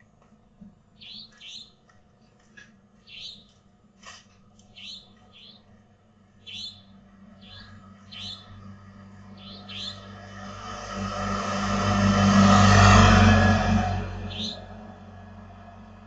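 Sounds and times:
bird chirping: 0:01.0 - 0:01.8, 0:03.0 - 0:03.6, 0:04.6 - 0:05.7, 0:06.4 - 0:10.3, 0:14.2 - 0:14.7
motorcycle passing: 0:06.5 - 0:16.0.

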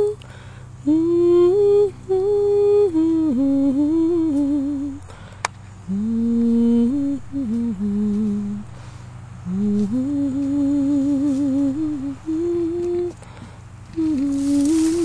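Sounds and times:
person humming slow tune: 0:00.0 - 0:15.0.

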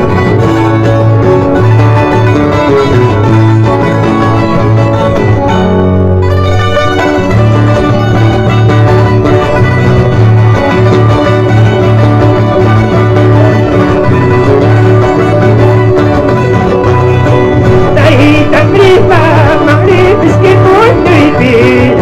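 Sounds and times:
plucked strings: 0:00.0 - 0:22.0
violin: 0:00.0 - 0:22.0.

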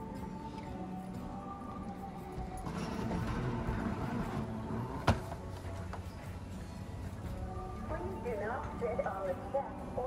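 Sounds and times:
faint background music: 0:00.0 - 0:10.0
travellers and luggage moving: 0:00.0 - 0:10.0.

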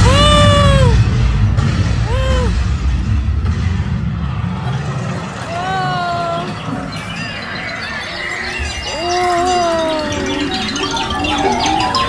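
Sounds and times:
voice-like arched calls: 0:05.7 - 0:12.0.

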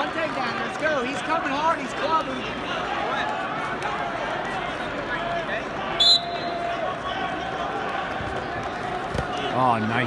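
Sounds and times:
arena crowd hubbub: 0:00.0 - 0:10.0
referee's whistle blast: 0:06.0 - 0:06.6.

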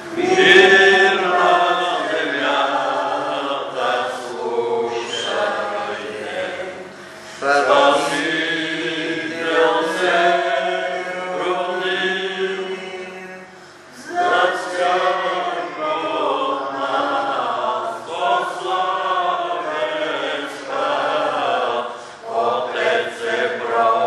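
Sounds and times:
congregation singing a hymn: 0:00.0 - 0:24.0.

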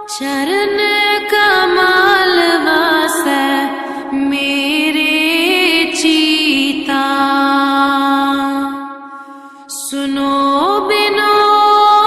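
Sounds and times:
person singing devotional song: 0:00.0 - 0:12.0.

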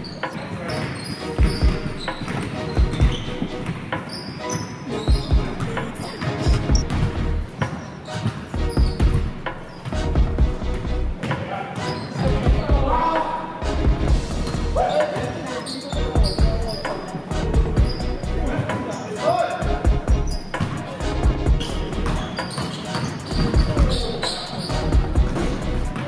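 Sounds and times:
music: 0:00.0 - 0:26.0
basketball bouncing on hardwood: 0:06.5 - 0:07.2.

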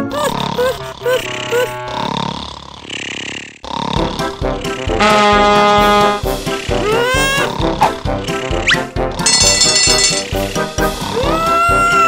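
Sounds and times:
cartoon cat snoring: 0:00.0 - 0:09.4, 0:10.8 - 0:11.8.

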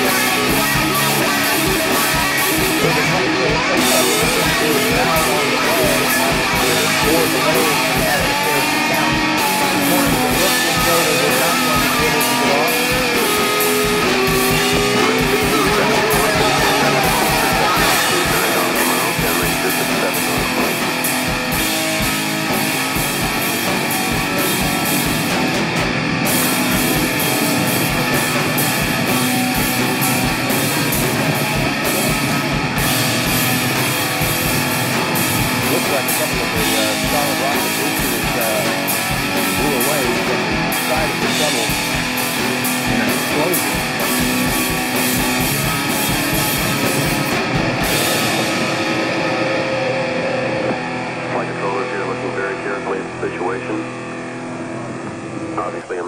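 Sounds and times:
drum kit: 0:00.0 - 0:51.2
distorted electric guitars: 0:00.0 - 0:56.0
wavering melodic guitar line: 0:00.0 - 0:56.0.

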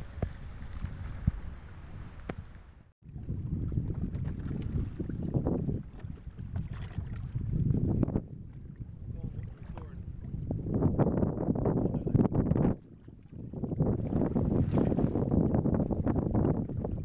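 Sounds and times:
waves washing past boat: 0:00.0 - 0:17.0
wind buffeting microphone: 0:00.0 - 0:17.0.

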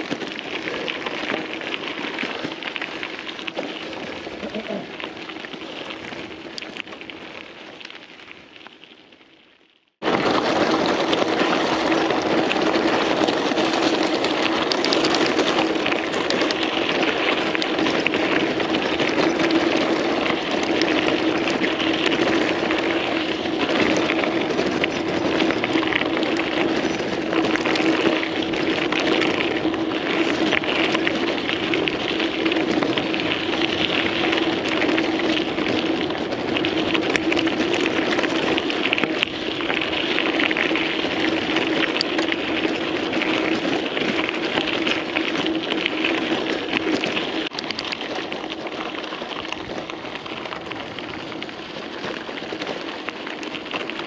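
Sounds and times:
constant hum: 0:00.0 - 0:06.8
bike tyres crunching on gravel: 0:00.0 - 0:54.0
gravel clicks: 0:00.0 - 0:54.0
wind noise: 0:10.0 - 0:54.0.

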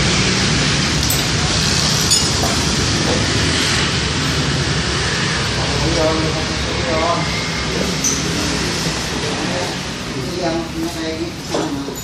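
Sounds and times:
loud rumbling noise: 0:00.0 - 0:10.8.

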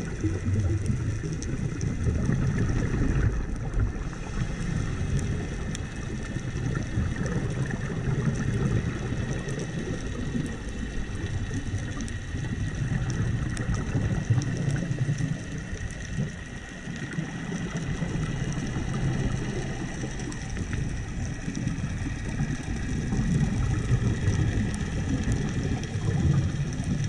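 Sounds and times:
faint steady hum: 0:00.0 - 0:27.0
underwater rumble of water: 0:00.0 - 0:27.0
faint clicks: 0:05.1 - 0:27.0.

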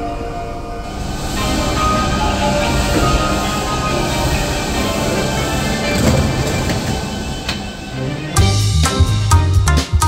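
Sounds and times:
background music: 0:00.0 - 0:10.0
electric train on rails: 0:00.0 - 0:10.0.

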